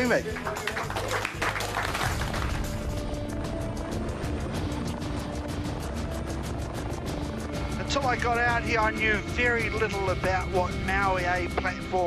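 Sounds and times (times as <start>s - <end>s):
helicopter rotor beating: 0.0s - 12.0s
music: 0.0s - 12.0s.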